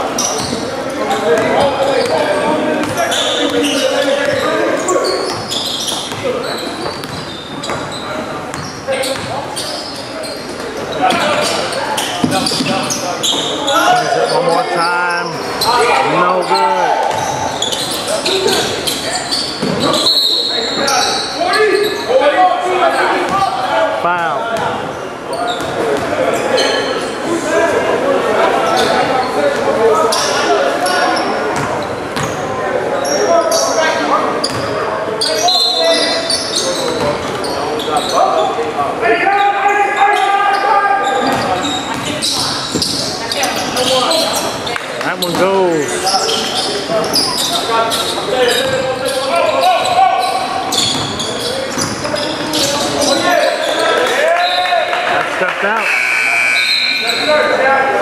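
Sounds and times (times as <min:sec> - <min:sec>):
basketball bouncing on hardwood floor: 0:06.9 - 0:07.9.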